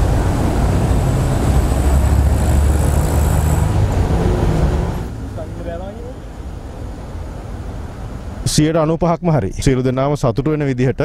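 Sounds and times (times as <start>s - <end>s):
vehicle engine rumble passing: 0.0s - 8.4s.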